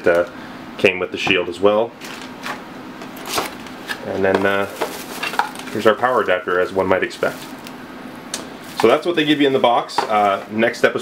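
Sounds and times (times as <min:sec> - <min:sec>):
cardboard rustling: 0:03.2 - 0:07.6.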